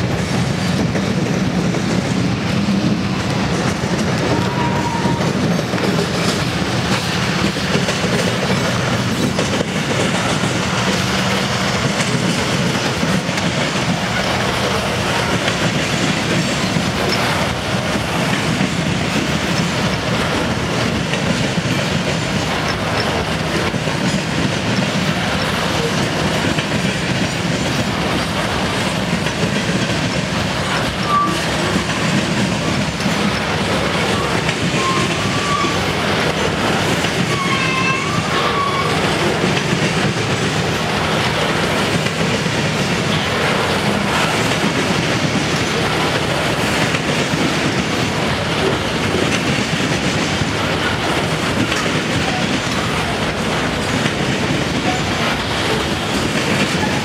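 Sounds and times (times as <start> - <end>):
freight train wheels clattering: 0.0 - 57.0.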